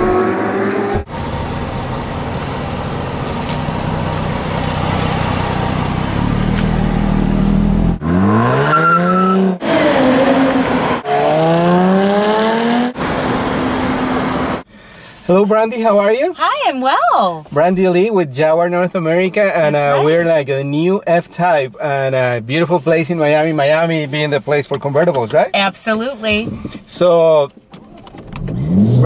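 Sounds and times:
car engine accelerating: 0:00.0 - 0:14.6, 0:28.2 - 0:29.0.

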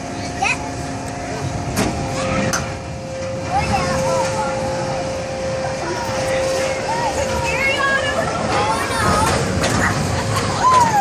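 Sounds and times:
ride mechanical tone: 0:00.0 - 0:11.0
children calling out: 0:06.8 - 0:11.0.

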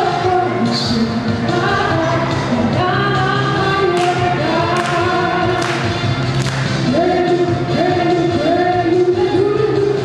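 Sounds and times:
woman singing into a microphone: 0:00.0 - 0:05.9, 0:06.8 - 0:10.0
loud backing music: 0:00.0 - 0:10.0.

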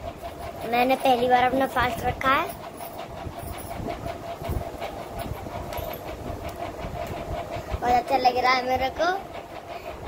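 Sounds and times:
electric fan humming: 0:00.0 - 0:10.0.

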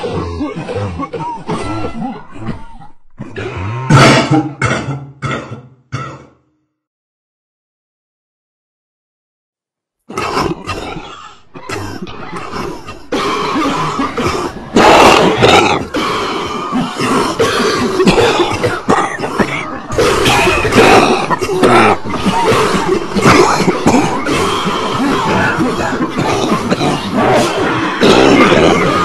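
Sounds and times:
person coughing and spluttering: 0:00.0 - 0:02.8, 0:04.0 - 0:06.3, 0:10.1 - 0:29.0.

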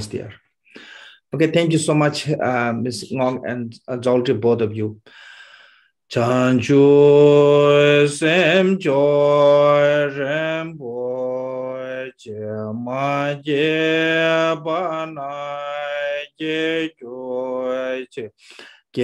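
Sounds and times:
man chanting a prayer: 0:00.0 - 0:00.4, 0:01.4 - 0:05.0, 0:06.1 - 0:19.0.

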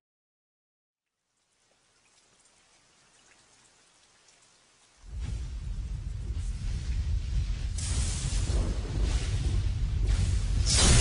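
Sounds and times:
faint steady hiss: 0:01.0 - 0:11.0
light pattering ticks: 0:01.4 - 0:05.0.

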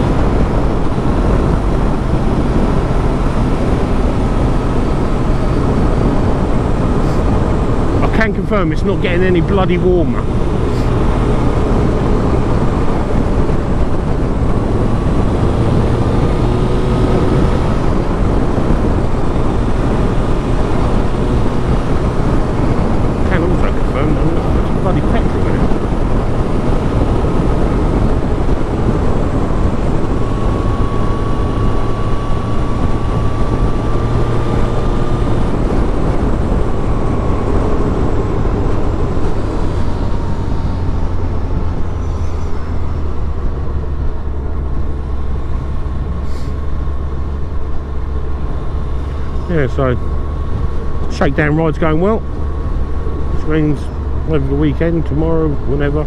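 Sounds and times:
motorcycle engine cruising: 0:00.0 - 0:56.0
wind rush on microphone: 0:00.0 - 0:56.0.

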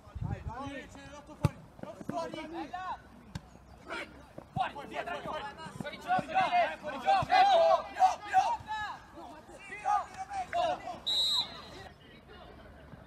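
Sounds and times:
players and spectators shouting: 0:03.8 - 0:11.9.

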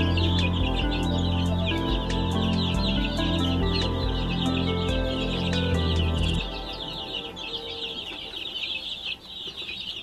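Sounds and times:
baby chicks peeping: 0:00.0 - 0:10.0
background music: 0:00.0 - 0:10.0.

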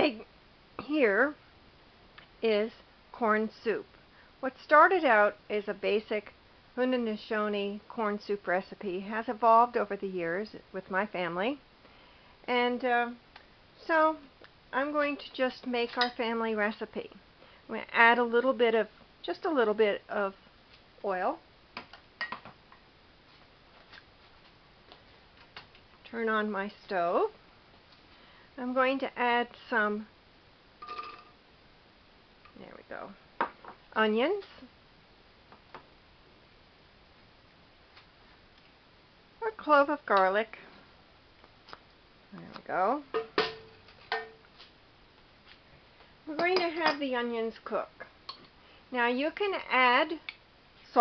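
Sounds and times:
metal pot knocked and ringing: 0:30.8 - 0:31.3.

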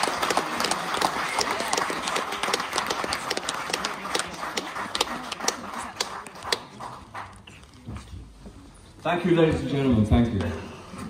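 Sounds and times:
cheers: 0:00.0 - 0:02.8
audience applauding: 0:00.0 - 0:07.8.

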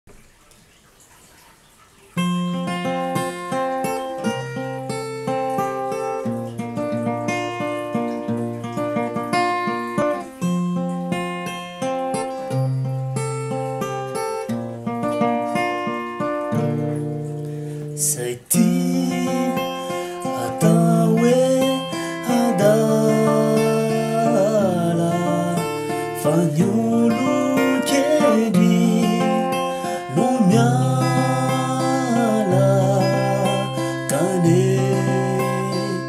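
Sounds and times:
acoustic guitar picked notes: 0:01.9 - 0:36.0.

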